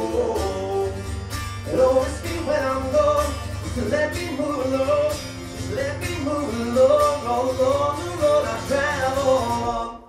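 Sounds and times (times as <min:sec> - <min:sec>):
acoustic guitar strumming: 0:00.0 - 0:10.0
man singing wordlessly: 0:00.0 - 0:10.0.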